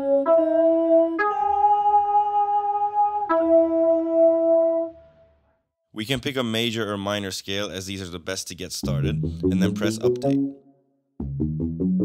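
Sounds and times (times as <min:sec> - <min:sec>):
synth keys melody: 0:00.0 - 0:05.0, 0:08.8 - 0:12.0.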